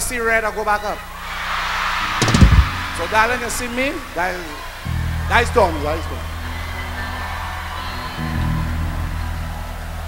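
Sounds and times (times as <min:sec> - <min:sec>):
audience applause: 0:01.3 - 0:05.0
loud drum hit: 0:02.1 - 0:04.1.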